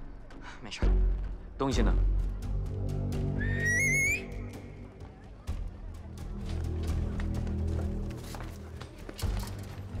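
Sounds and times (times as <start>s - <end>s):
man's rising finger whistle: 3.4s - 4.5s.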